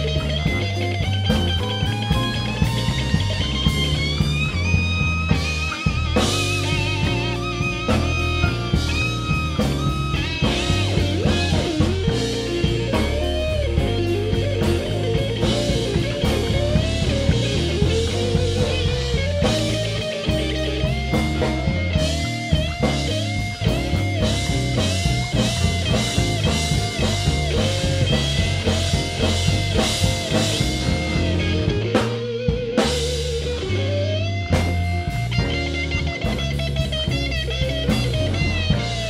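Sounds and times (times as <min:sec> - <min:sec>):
electric blues band: 0:00.0 - 0:39.0
electric guitar lead: 0:00.0 - 0:39.0.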